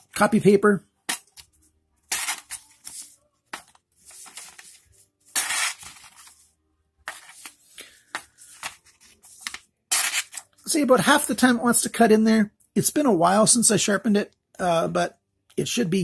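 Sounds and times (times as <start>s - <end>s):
knife cutting and ripping paper: 2.1s - 3.1s, 4.1s - 6.4s, 8.5s - 10.5s.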